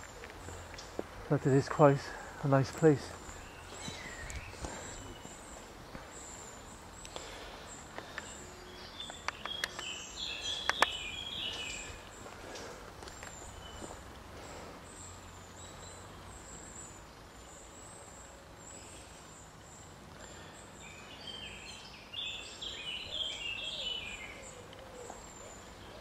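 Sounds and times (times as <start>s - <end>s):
faint woodland ambience: 0.0s - 26.0s
songbird singing: 0.0s - 26.0s.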